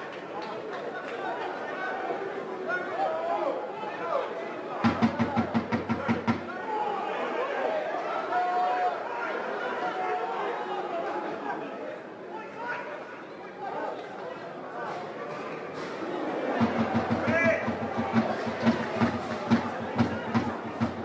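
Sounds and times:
voices calling and chattering: 0.0s - 21.0s
loud rapid knocks: 4.8s - 6.5s, 16.6s - 21.0s.

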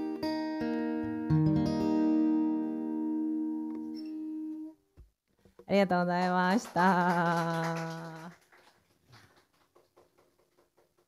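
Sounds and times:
acoustic guitar chord ringing: 0.0s - 4.7s
woman speaking: 5.7s - 8.3s.

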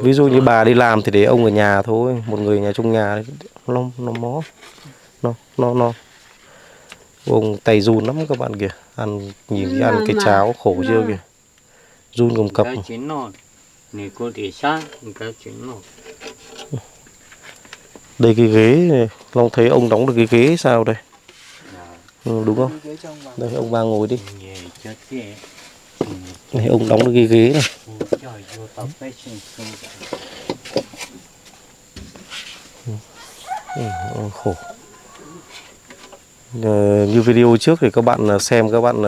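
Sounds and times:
faint high-pitched whine: 0.0s - 39.0s.

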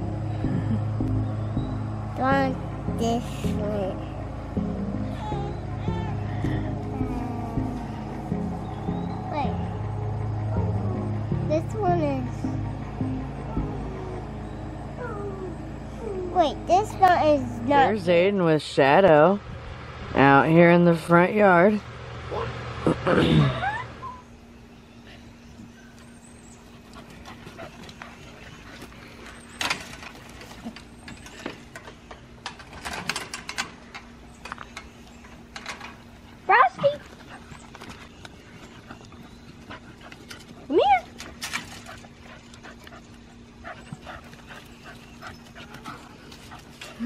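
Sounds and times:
faint low hum: 0.0s - 47.0s
dog whining: 5.0s - 10.9s, 13.4s - 16.4s, 23.5s - 24.4s
person laughing: 22.8s - 24.2s
person coughing: 23.1s - 23.6s.

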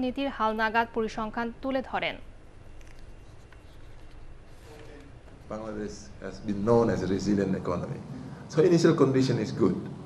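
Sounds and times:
woman's voice: 0.0s - 2.3s
faint rustling: 2.7s - 6.5s.

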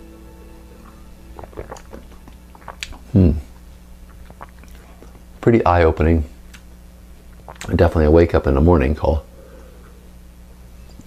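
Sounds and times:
faint background music: 0.0s - 3.4s
person sipping and swallowing: 0.8s - 5.3s, 7.3s - 7.7s.

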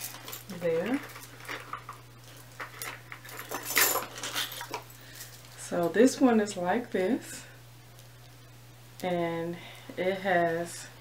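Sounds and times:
chain necklace jangling: 2.3s - 5.5s.

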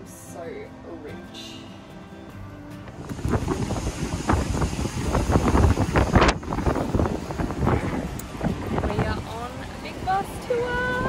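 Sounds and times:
wind buffeting microphone: 2.9s - 11.0s.

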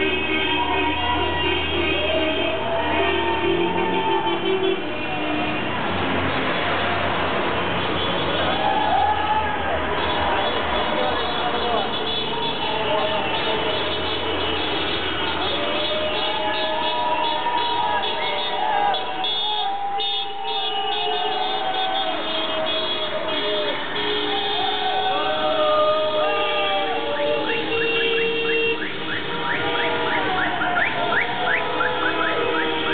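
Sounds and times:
car horns honking: 0.0s - 5.9s, 9.8s - 32.9s
cars driving past: 0.0s - 32.9s
traffic: 0.0s - 32.9s.

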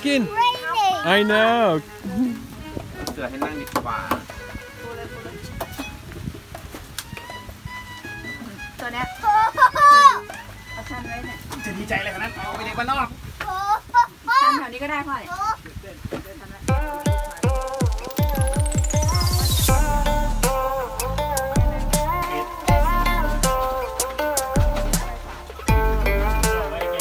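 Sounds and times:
child calling and chattering: 0.2s - 1.3s, 9.1s - 10.6s, 13.4s - 14.7s, 15.3s - 15.6s.

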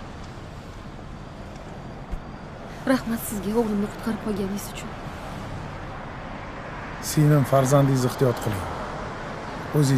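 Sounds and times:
car and traffic rumble: 0.0s - 9.9s.

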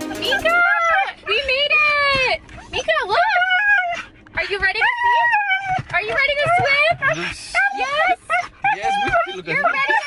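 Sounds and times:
dog howling and whining: 0.4s - 1.3s, 2.6s - 10.0s.

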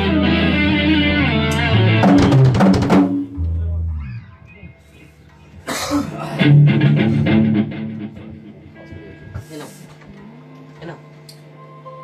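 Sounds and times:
rock band playing: 0.0s - 4.3s, 6.1s - 8.7s.

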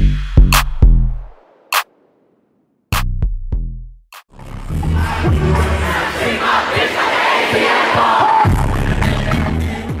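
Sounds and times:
hip-hop beat with heavy bass: 0.0s - 1.9s, 2.9s - 6.0s, 8.4s - 10.0s
crowd shouting and cheering: 4.4s - 10.0s.

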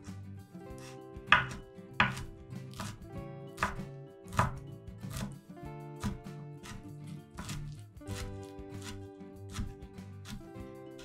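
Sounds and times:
knife chopping on wooden board: 0.7s - 5.4s, 6.0s - 10.6s.

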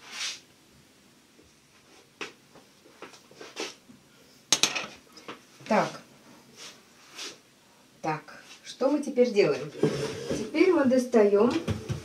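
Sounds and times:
metal clatter on glass cooktop: 4.5s - 5.0s.

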